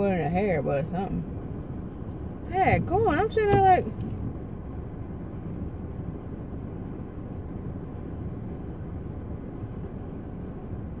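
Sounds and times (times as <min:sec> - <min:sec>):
car engine idling: 0:00.0 - 0:11.0
car heater running: 0:00.0 - 0:11.0.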